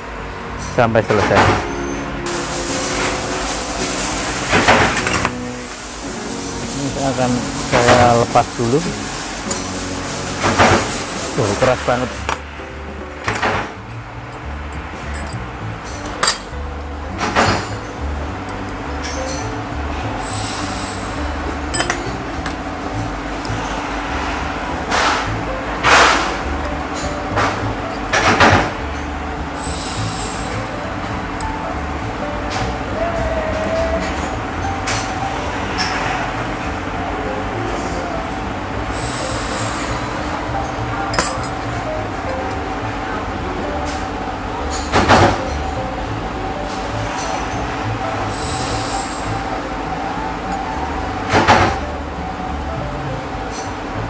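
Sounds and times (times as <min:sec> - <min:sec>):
steady background hum: 0:00.0 - 0:54.0
allen key clinking on metal: 0:14.4 - 0:16.5, 0:41.1 - 0:42.2.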